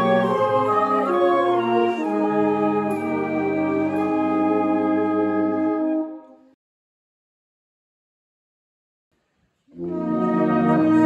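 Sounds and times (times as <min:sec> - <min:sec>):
brass band holding a chord: 0:00.0 - 0:06.4, 0:09.7 - 0:11.0.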